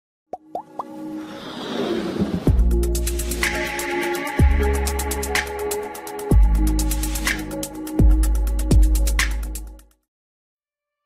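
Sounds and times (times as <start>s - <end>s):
rising synth plops: 0.4s - 1.0s.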